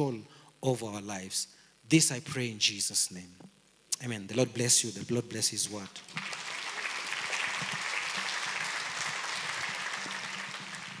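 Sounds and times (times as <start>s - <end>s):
congregation applauding: 5.9s - 11.0s.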